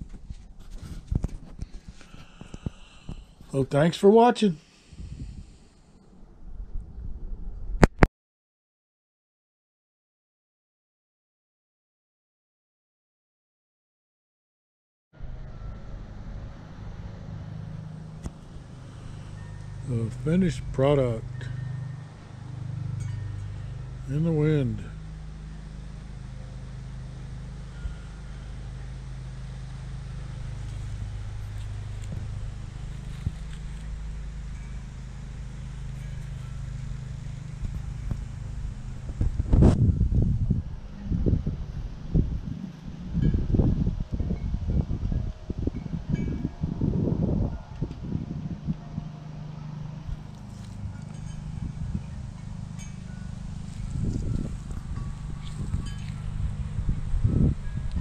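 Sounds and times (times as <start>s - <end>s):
steady low hum: 0.0s - 7.8s, 15.2s - 58.0s
wind buffeting microphone: 4.8s - 7.8s, 27.2s - 49.1s, 50.0s - 58.0s
metal wind chimes tinkling: 17.2s - 39.2s, 48.8s - 58.0s.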